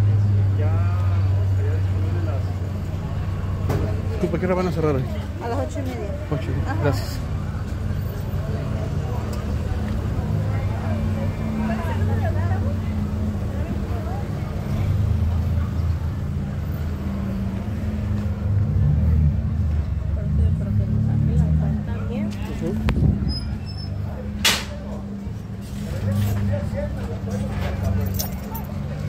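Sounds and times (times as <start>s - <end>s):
faint background voices: 0.0s - 29.0s
low rumble of traffic: 0.0s - 29.0s.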